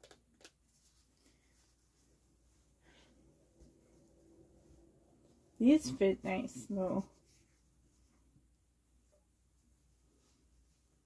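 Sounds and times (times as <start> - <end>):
fabric rustling: 0.6 - 11.0.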